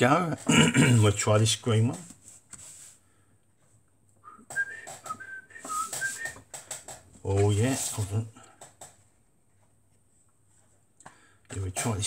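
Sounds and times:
man whistling a tune: 4.2s - 6.4s.

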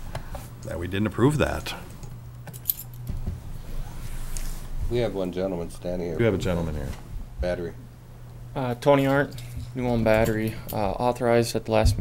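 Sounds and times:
low hum of sound system: 0.0s - 12.0s.

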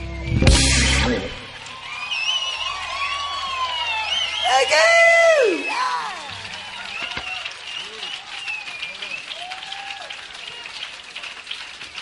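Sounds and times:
audience whistling: 0.0s - 10.7s.

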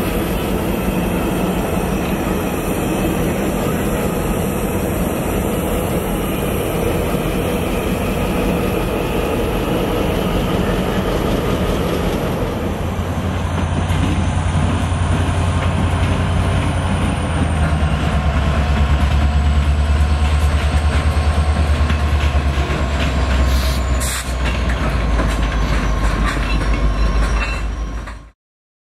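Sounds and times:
diesel locomotives rolling past: 0.0s - 28.4s.

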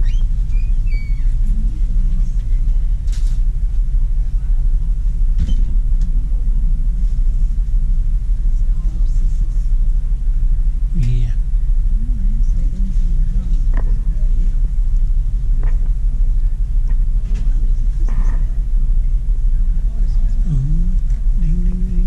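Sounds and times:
faint rustles: 0.0s - 10.9s
steady low rumble: 0.0s - 22.0s.

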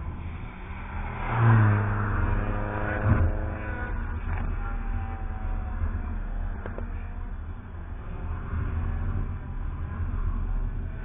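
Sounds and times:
car driving past: 0.2s - 4.5s.

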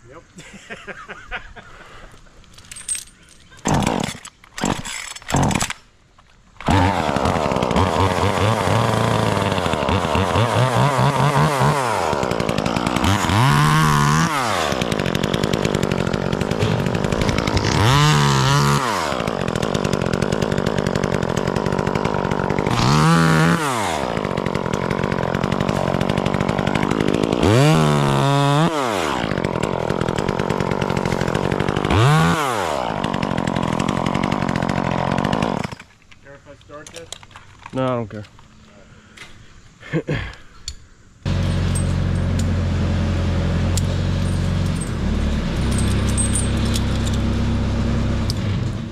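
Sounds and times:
chainsaw revving: 3.6s - 5.8s, 6.6s - 35.9s, 41.2s - 48.9s.

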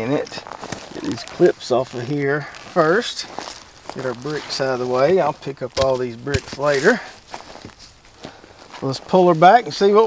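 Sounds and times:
footsteps on mulch: 0.0s - 10.0s.

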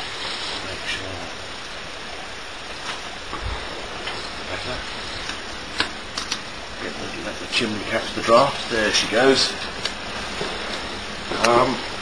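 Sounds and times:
boiler fire rushing air: 0.0s - 12.0s.

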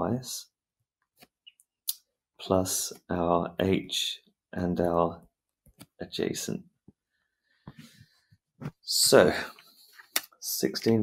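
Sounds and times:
man talking: 0.0s - 0.5s, 2.4s - 5.2s, 6.0s - 6.6s, 8.8s - 9.6s, 10.4s - 11.0s.

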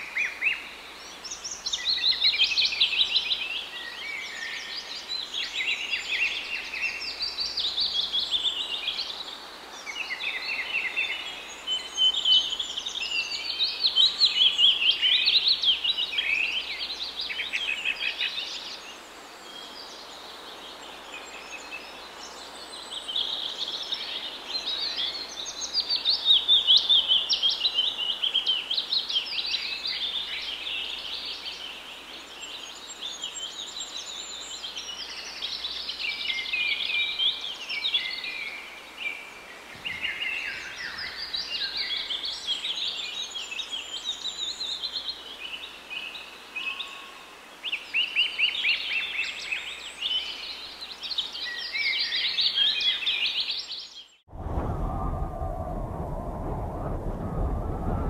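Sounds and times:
steady background hiss: 0.0s - 54.1s.

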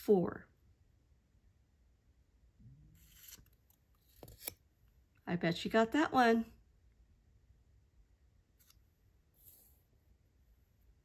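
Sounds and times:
paper card rustle: 3.0s - 4.6s.

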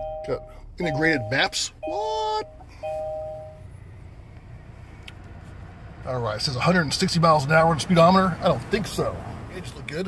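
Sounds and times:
electronic dashboard chimes: 0.0s - 3.7s
car engine idling: 0.0s - 10.0s.

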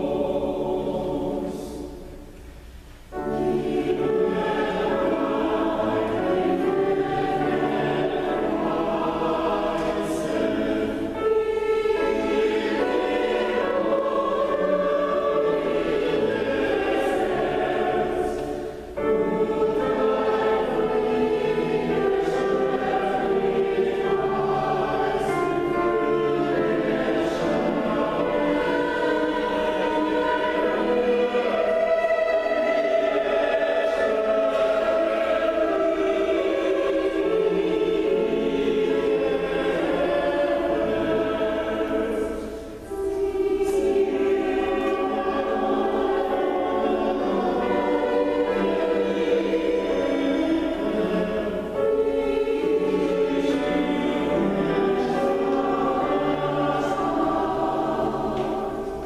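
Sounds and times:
mixed choir singing: 0.0s - 2.3s, 3.1s - 59.0s.

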